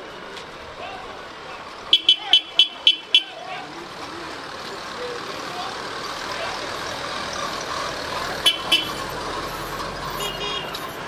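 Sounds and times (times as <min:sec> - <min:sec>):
road traffic: 0:00.0 - 0:11.0
vehicle horn toots: 0:01.9 - 0:03.4, 0:08.4 - 0:09.1, 0:10.1 - 0:10.9.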